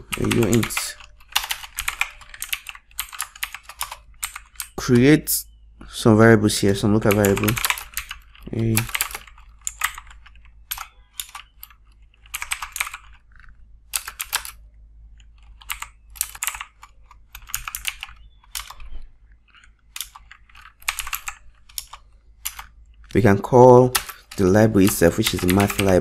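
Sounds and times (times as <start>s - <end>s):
computer keyboard typing: 0.0s - 5.1s, 6.7s - 26.0s.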